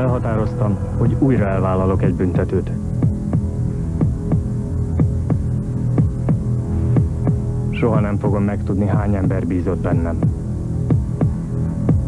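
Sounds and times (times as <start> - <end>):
sustained low drone: 0.0 - 12.0
heartbeat-like double thump: 3.0 - 7.5.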